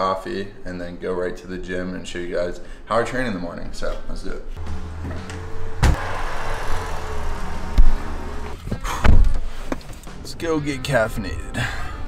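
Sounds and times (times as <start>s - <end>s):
door opening and shutting: 4.6s - 9.5s
loud thump: 5.2s - 6.2s.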